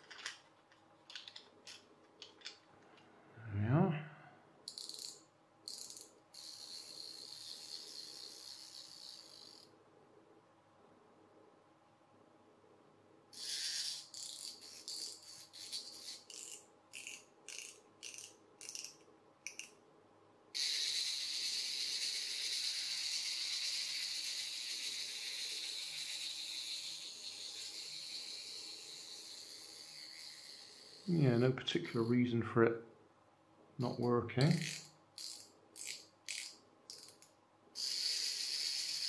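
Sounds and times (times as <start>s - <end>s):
clockwork motor winding clicks: 4.7s - 9.7s, 13.4s - 19.7s, 20.6s - 31.2s, 34.5s - 39.0s.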